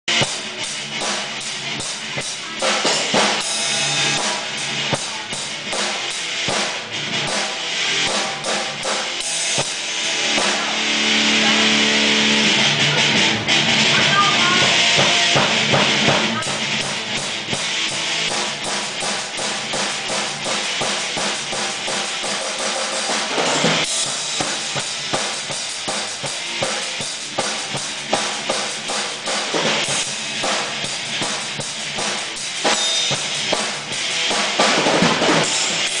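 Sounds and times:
drum kit playing: 0.0 - 36.0.

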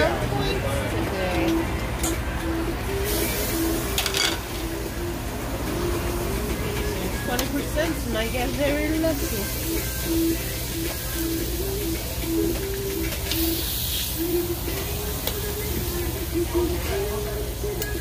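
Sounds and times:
background music: 0.0 - 18.0
voices: 0.0 - 18.0
meat sizzling on a grill: 7.9 - 17.6.

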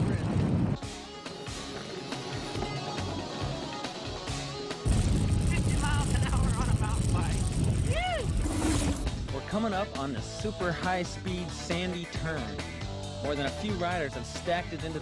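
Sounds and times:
music: 0.0 - 15.0
bike rumbling over rough ground: 4.9 - 9.3
wind on microphone: 4.9 - 9.3.

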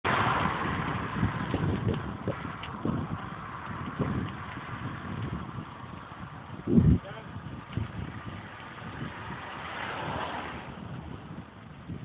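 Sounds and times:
vehicle road noise: 0.0 - 12.0
wind buffeting on microphone: 0.1 - 12.0.

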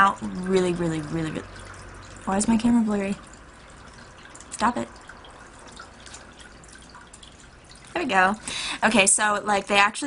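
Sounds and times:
water dripping: 0.0 - 10.0.

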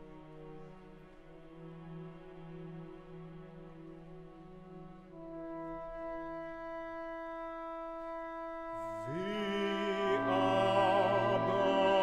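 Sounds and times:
flute and oboe long notes: 0.0 - 12.0.

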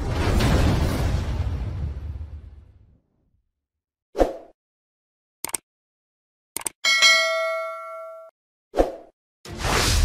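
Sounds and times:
bell-like ding: 6.8 - 8.3.

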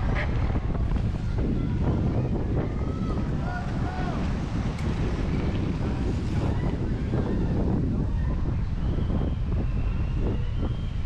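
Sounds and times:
faint distant voices: 0.0 - 9.6
wind buffeting microphone: 0.0 - 11.0.

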